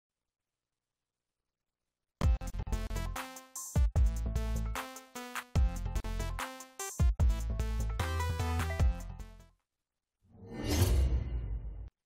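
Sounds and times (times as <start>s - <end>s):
whoosh sound effect: 10.4s - 11.9s.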